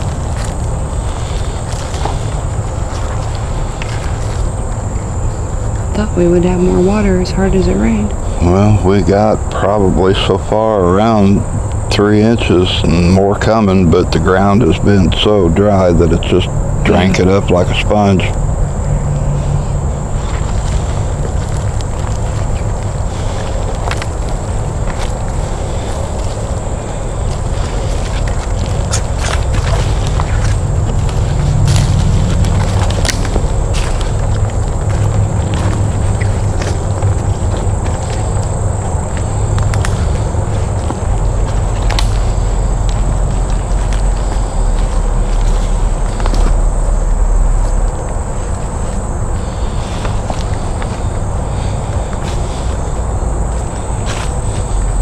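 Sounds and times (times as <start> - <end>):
footsteps through dry leaves: 0.0 - 5.8, 19.1 - 55.0
low rumble on microphone: 0.0 - 55.0
sticks crunching and snapping: 27.2 - 46.6.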